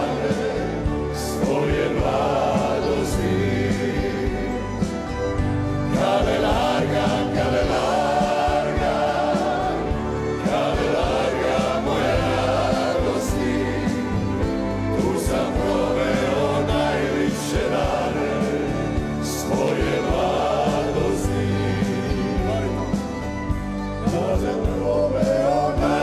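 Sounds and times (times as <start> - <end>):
choir singing sustained chords: 0.0 - 26.0
orchestra playing: 0.0 - 26.0.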